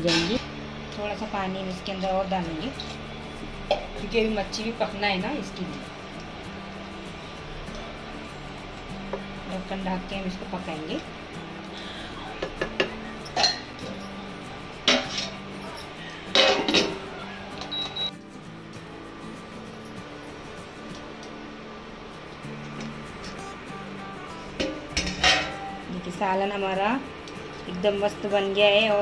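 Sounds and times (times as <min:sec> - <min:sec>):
background music: 0:00.0 - 0:29.0
cooktop beep: 0:17.6 - 0:18.1.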